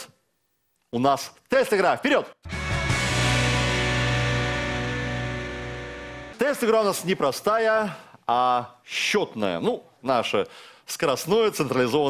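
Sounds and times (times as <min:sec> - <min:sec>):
held musical chord: 0:02.5 - 0:06.4.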